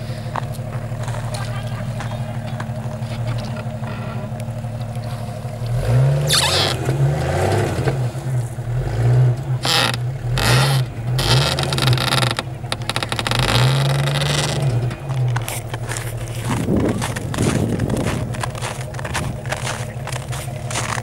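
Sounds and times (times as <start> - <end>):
car engine revving: 0.0 - 21.0
tires spinning in snow: 0.0 - 21.0.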